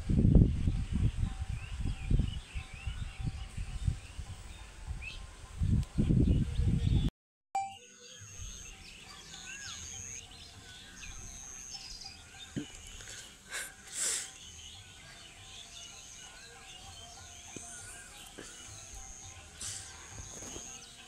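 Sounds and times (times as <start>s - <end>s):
faint high-pitched tone: 7.6s - 8.2s
small birds chirping: 8.0s - 21.0s.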